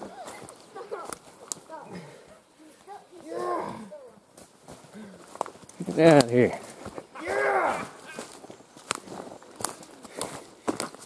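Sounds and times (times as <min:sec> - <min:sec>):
men calling out: 0:01.7 - 0:04.2, 0:05.8 - 0:08.4
footsteps crunching through dry leaves: 0:04.3 - 0:11.0.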